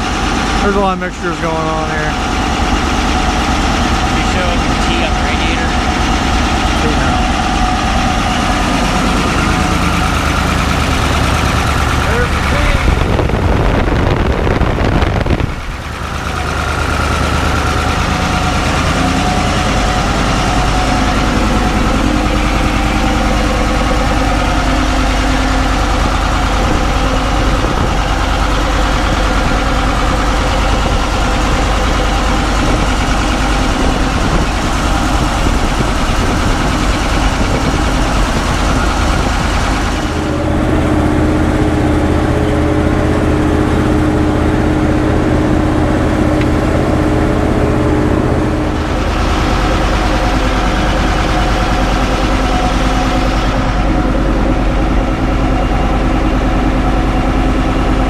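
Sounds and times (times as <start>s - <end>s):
diesel engine running: 0.0s - 58.0s.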